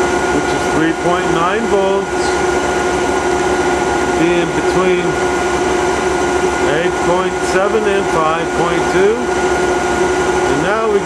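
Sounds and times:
constant pitched whine: 0.0s - 11.0s
electrical machine humming: 0.0s - 11.0s.

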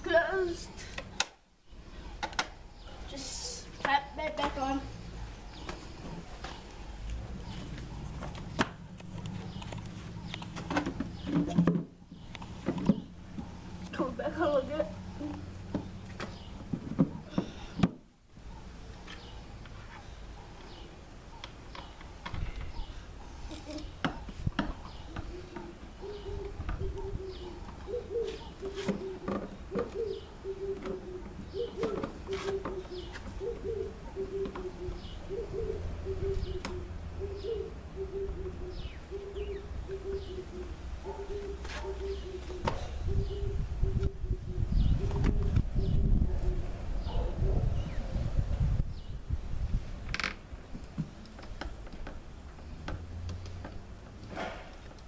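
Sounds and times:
bird calling low notes: 24.8s - 47.2s.

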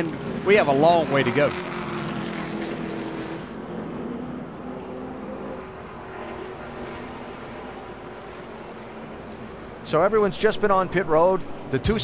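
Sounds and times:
race car engines droning: 0.0s - 12.0s.

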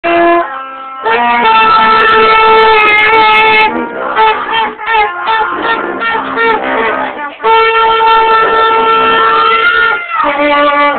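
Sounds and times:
wind instruments playing a chord: 0.1s - 10.9s.

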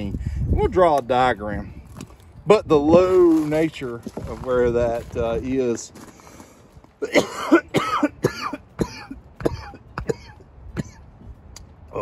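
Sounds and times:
man coughing: 7.0s - 11.1s.

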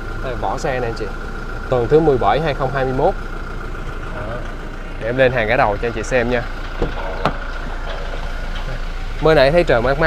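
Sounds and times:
engine idle hum: 0.0s - 10.0s.

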